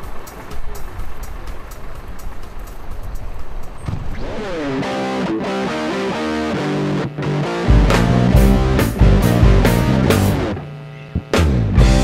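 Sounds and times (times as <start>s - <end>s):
background music: 4.1s - 12.0s
electric guitar riff: 4.2s - 12.0s.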